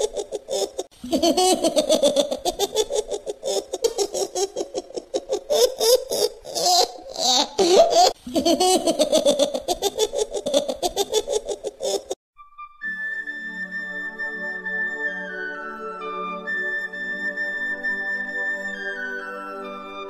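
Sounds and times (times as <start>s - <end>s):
high-pitched laughter: 0.0s - 12.2s.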